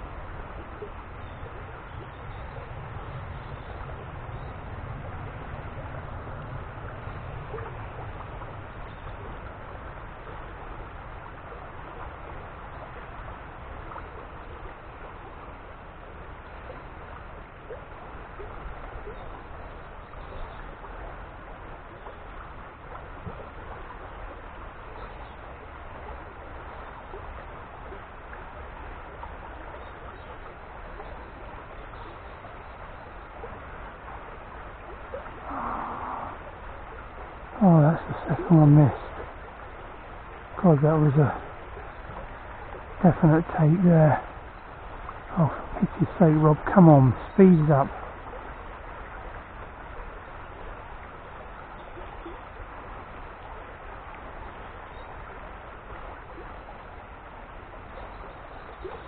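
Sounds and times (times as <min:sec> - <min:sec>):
river water rushing: 0:00.0 - 0:59.0.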